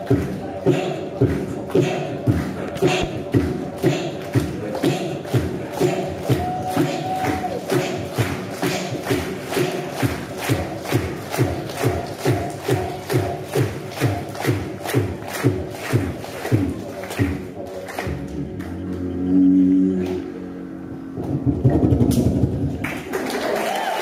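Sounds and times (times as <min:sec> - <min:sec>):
beatboxing into a microphone: 0:00.0 - 0:22.8.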